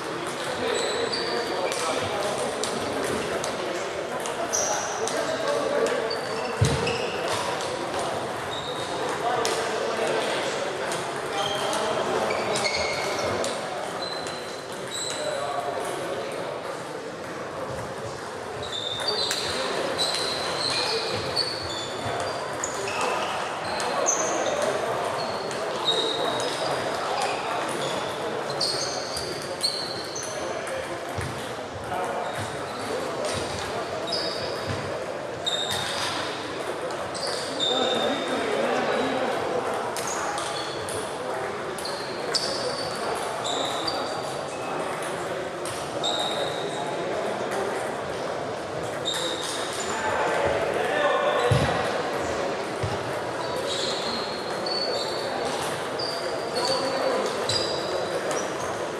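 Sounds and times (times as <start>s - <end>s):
murmur of voices in hall: 0.0s - 58.9s.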